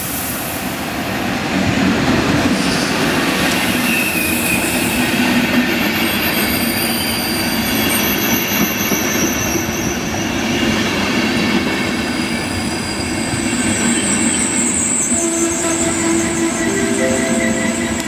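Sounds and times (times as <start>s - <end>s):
train wheels rumbling on rail: 0.0s - 16.6s.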